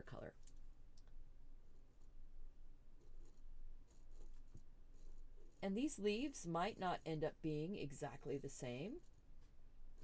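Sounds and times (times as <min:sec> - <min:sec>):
pen scratching on paper: 0:03.0 - 0:10.0.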